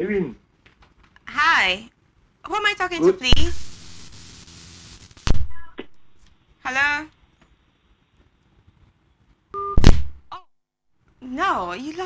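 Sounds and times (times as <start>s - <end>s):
faint telephone line hiss: 0.2s - 9.9s.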